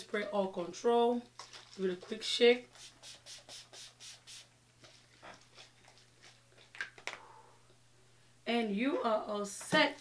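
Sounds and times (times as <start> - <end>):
spray bottle hissing puffs: 2.8 - 4.5.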